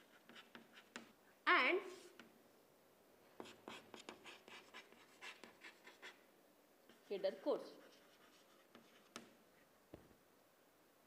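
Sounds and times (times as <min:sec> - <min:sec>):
chalk scratching on chalkboard: 0:00.0 - 0:01.2, 0:01.8 - 0:02.3, 0:03.4 - 0:06.2, 0:06.9 - 0:09.4.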